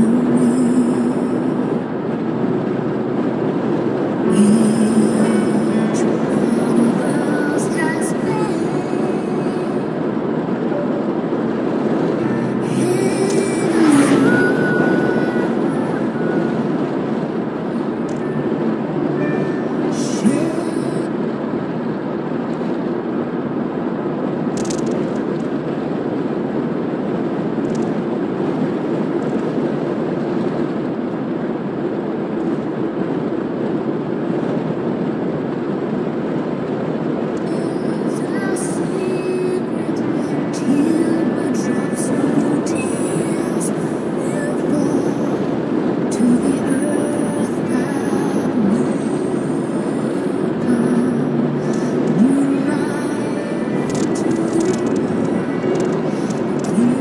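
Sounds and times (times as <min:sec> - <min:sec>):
road and tyre noise: 0:00.0 - 0:57.0
truck passing: 0:00.0 - 0:57.0.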